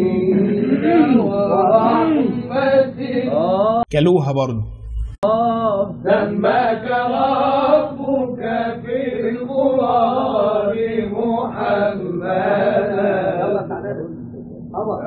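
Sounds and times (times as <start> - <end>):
steady low held tone: 3.9 - 6.5.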